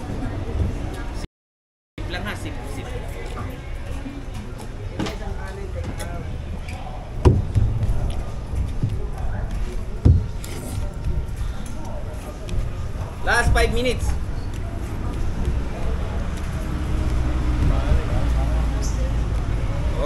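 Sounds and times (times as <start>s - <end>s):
faint background voices: 0.0s - 1.3s, 2.0s - 20.0s
thumps: 7.2s - 9.2s, 10.0s - 11.3s.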